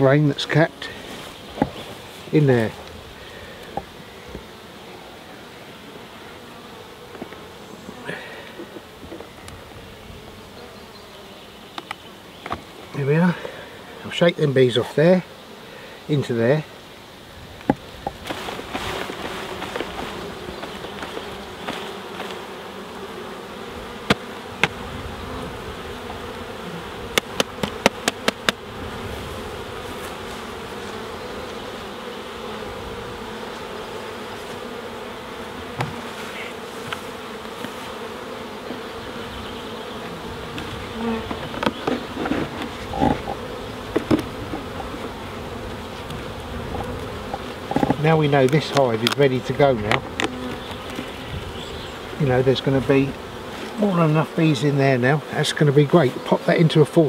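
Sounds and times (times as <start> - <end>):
honeybees buzzing: 0.0 - 57.0.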